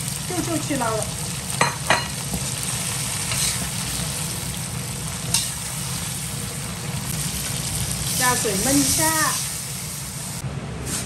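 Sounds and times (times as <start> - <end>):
fish sizzling in a wok: 0.0 - 11.0
metal spatula scraping pan: 3.3 - 3.6.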